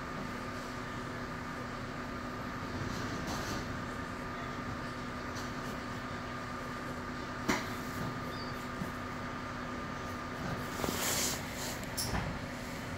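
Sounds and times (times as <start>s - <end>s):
train car hum with tone: 0.0s - 12.9s.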